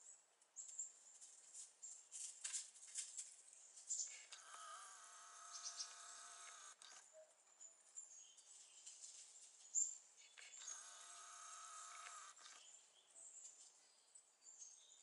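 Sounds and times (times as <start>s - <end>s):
camcorder zoom motor whine: 4.2s - 7.0s, 10.4s - 12.7s.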